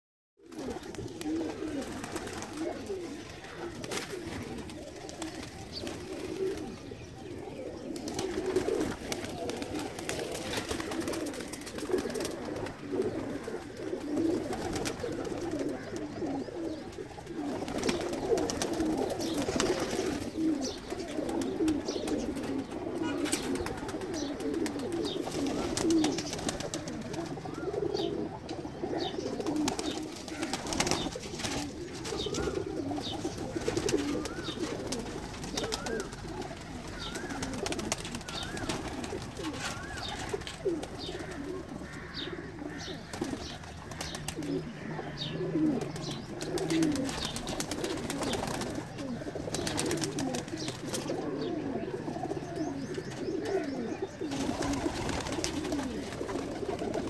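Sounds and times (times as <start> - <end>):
pigeons cooing: 0.4 - 57.0
wings flapping: 0.5 - 6.8, 7.9 - 16.2, 16.9 - 27.6, 29.4 - 42.1, 43.1 - 44.7, 45.6 - 51.2, 54.2 - 57.0.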